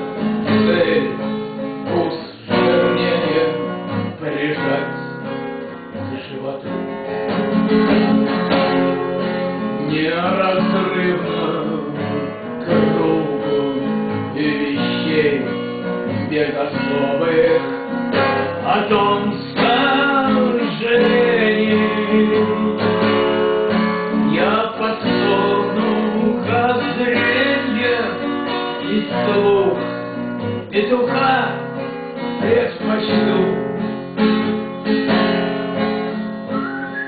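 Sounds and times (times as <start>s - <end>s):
acoustic guitar strummed and plucked: 0.0s - 37.0s.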